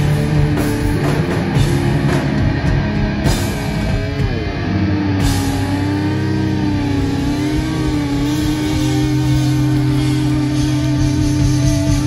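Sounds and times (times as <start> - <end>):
distorted electric guitars sustaining: 0.0 - 12.0
steady low bass note: 0.0 - 12.0.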